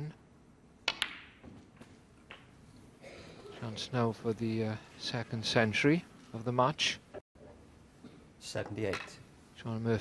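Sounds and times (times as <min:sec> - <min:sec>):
ball dropping into pocket: 0:00.8 - 0:02.6
snooker balls clicking: 0:00.8 - 0:02.6.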